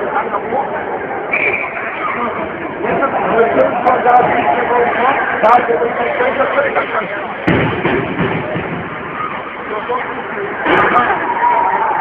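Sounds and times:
crowd and rink noise with voices: 0.0s - 12.0s
sharp knock: 7.4s - 8.9s.

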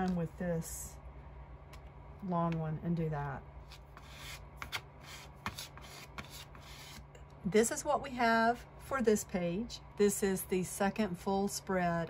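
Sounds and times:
card scraping across paper: 3.7s - 7.0s.

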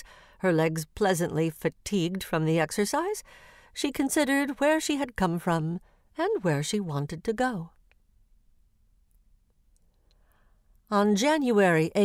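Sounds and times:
soft breath: 0.0s - 0.4s, 3.2s - 3.8s, 9.9s - 10.8s
woman narrating: 0.0s - 7.8s, 10.9s - 12.0s.

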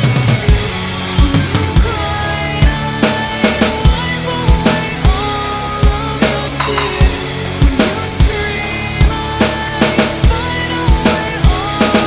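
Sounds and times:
backing track music: 0.0s - 12.0s
sharp snare hits: 6.6s - 7.2s.

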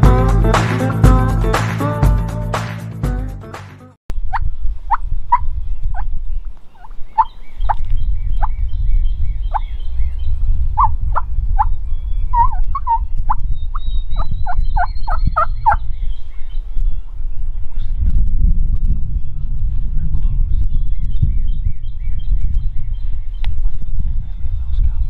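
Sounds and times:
wind rumble on microphone: 4.2s - 25.0s
wild turkey yelping: 6.8s - 7.8s, 12.3s - 15.8s.

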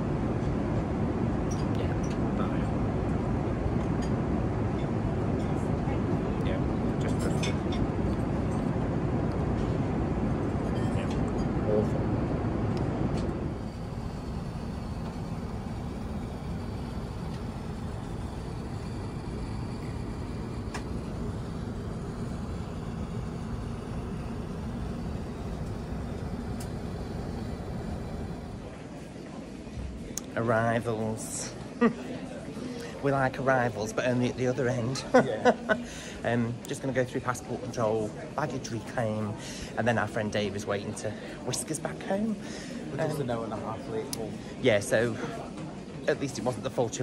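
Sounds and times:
airliner cabin engine noise: 0.0s - 31.8s.

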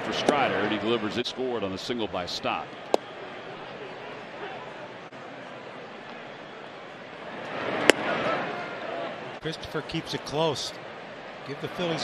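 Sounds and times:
crowd murmuring: 2.6s - 12.0s.

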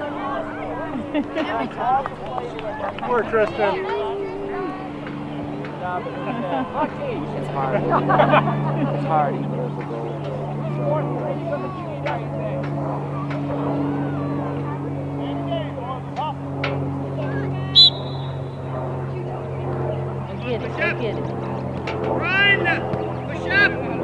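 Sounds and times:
children and adults chattering: 0.0s - 24.0s
low engine-like hum: 0.0s - 24.0s.

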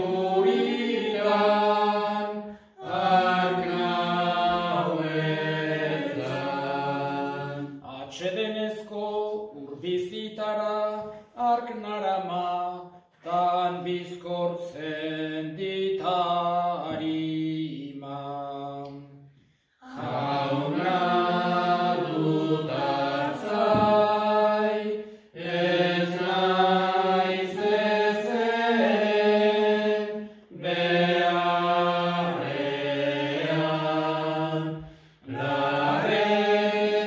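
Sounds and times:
man chanting: 7.8s - 18.7s.

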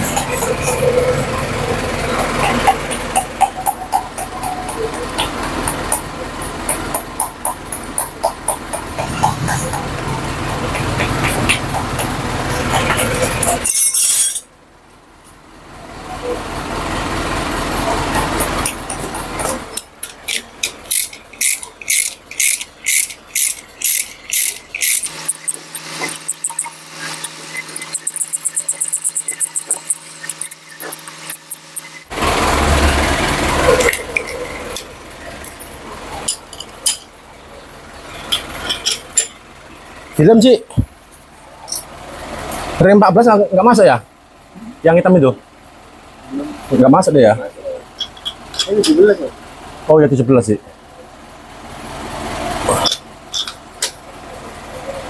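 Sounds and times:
metal hand tools working: 11.2s - 14.5s, 18.0s - 32.2s
wrench clicking: 18.4s - 32.0s, 52.8s - 53.6s.

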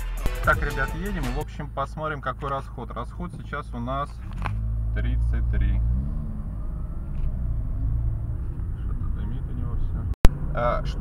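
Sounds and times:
car cabin road rumble: 1.5s - 11.0s.

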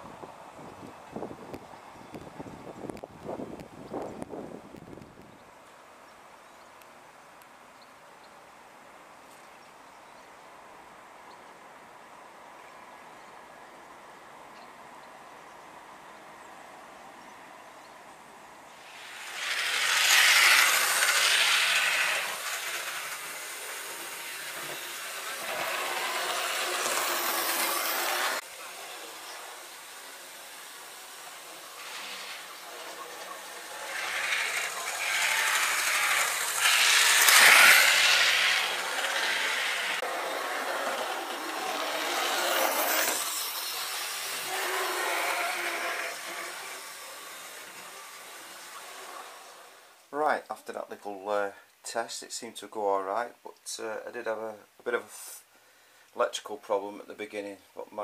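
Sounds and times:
model train rushing on track: 18.8s - 50.0s.

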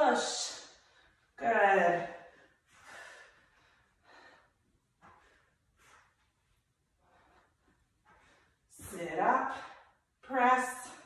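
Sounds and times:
woman breathing hard: 2.2s - 6.2s, 7.0s - 8.7s.

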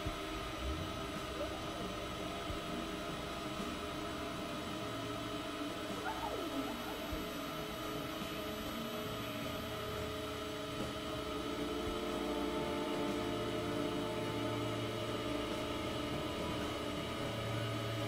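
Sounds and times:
layered electronic drone: 0.0s - 18.0s
low hum: 0.0s - 18.0s.

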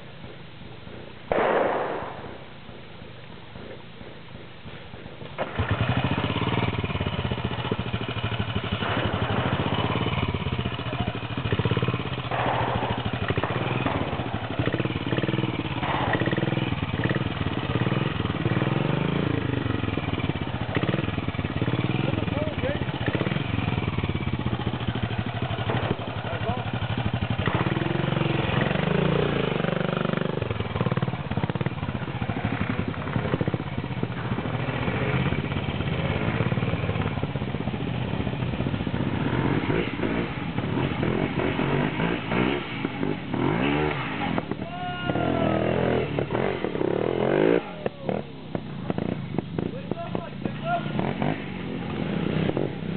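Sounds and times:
motorcycle engine revving: 5.3s - 52.9s.

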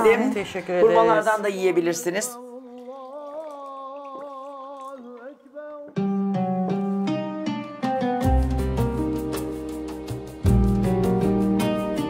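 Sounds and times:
plucked guitar tune: 6.0s - 12.0s.

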